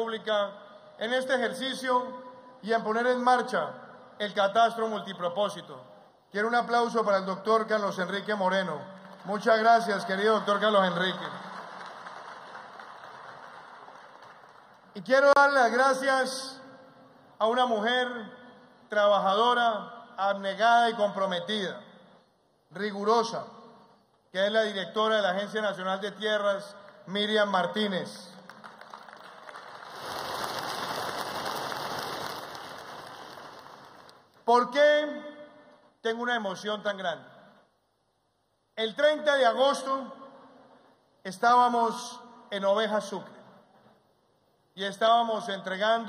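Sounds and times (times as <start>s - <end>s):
audience applauding: 9.0s - 15.0s, 28.5s - 34.2s.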